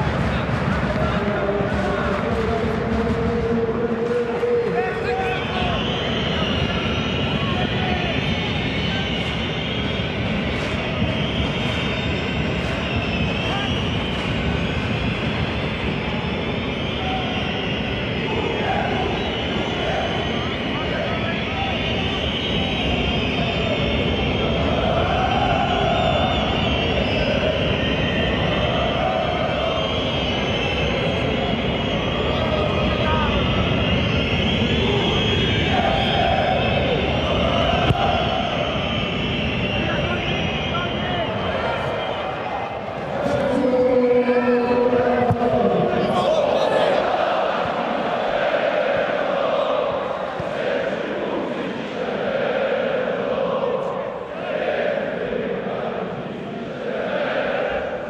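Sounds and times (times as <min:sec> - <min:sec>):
fans chanting and singing: 0:00.0 - 0:58.0
stadium crowd din: 0:00.0 - 0:58.0.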